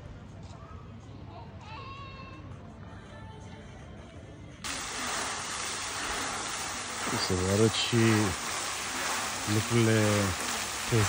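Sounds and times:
fountain jets splashing: 4.6s - 11.0s.

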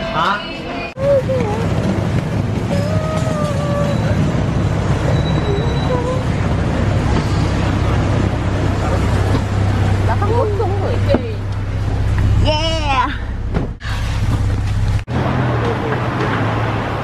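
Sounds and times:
low rumble of vehicles: 0.9s - 17.0s
single thump: 13.5s - 14.4s.

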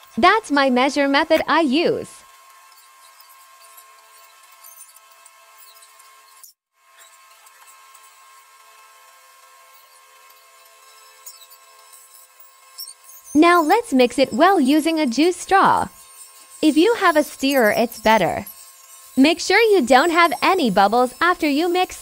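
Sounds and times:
resin being poured and stirred: 13.3s - 22.0s.

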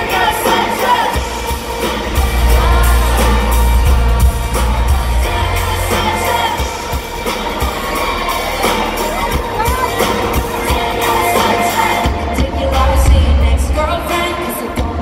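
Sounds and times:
heavy bass line: 0.0s - 14.1s
live pop music with female singer: 0.0s - 15.0s.

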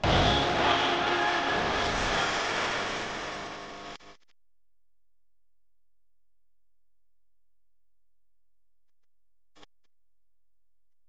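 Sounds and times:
drums: 0.0s - 4.0s
heavy bass: 0.0s - 4.1s.

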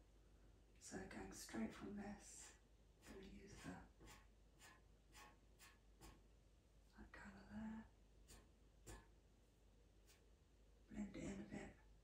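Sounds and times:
pencil scratching on paper: 1.6s - 6.2s, 8.2s - 9.2s, 10.0s - 10.3s.

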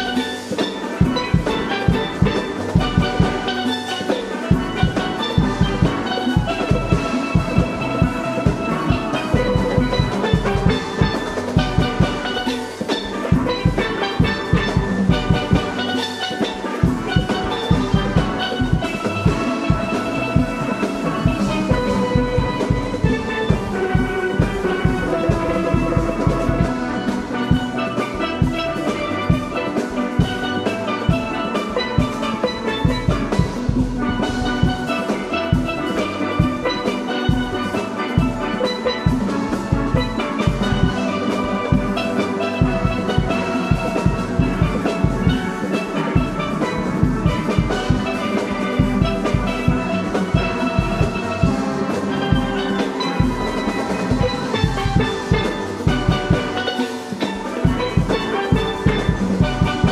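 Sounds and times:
drums and bass pans beat: 0.0s - 59.9s
steel pans playing melody: 0.0s - 59.9s.

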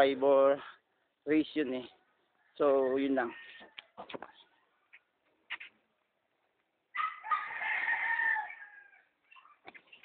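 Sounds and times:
rooster crowing: 6.9s - 9.1s.

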